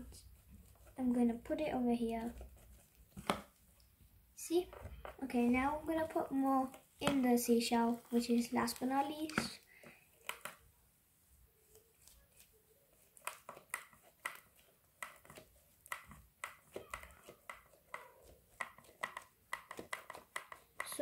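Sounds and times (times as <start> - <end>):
glove and plastic rustling: 4.5 - 21.0
fingers patting plaster in mould: 12.0 - 21.0.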